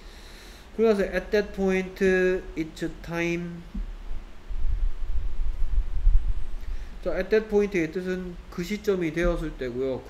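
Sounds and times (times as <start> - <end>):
low rumbling microphone noise: 0.0 - 10.0.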